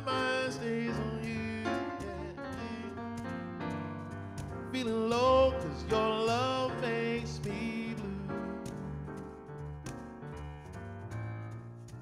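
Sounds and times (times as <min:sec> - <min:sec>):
man singing wordless note: 0:00.0 - 0:02.9, 0:04.7 - 0:08.5
grand piano accompaniment: 0:00.0 - 0:12.0.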